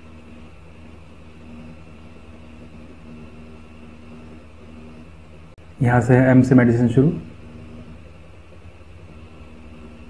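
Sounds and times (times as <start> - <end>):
faint low hum: 0.0 - 10.0
steady low tones: 0.0 - 10.0.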